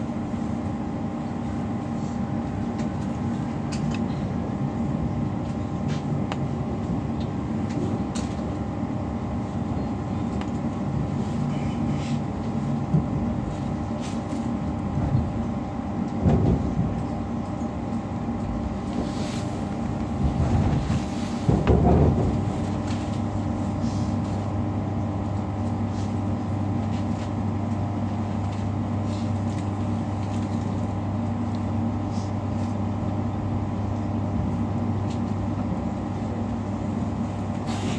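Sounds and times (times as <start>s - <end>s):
electric train rumble and hum: 0.0s - 37.9s
rattle and rumble surges: 10.2s - 24.5s.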